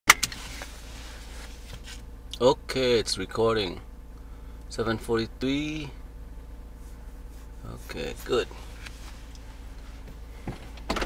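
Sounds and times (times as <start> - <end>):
low hum inside car cabin: 0.1 - 11.0.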